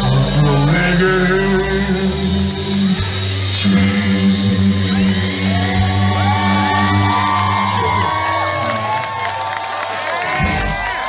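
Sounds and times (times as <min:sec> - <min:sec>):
audience cheering and whooping: 0:02.1 - 0:11.0.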